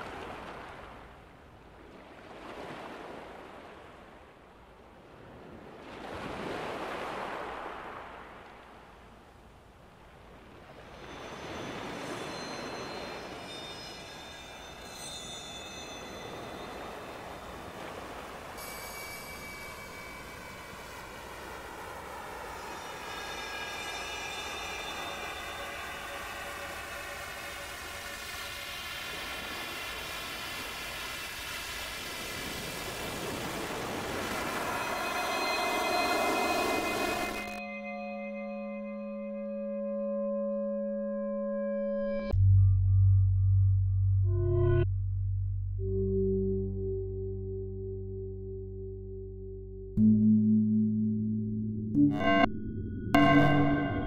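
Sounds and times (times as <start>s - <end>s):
electronic ambient music: 11.1s - 30.3s, 33.3s - 54.0s.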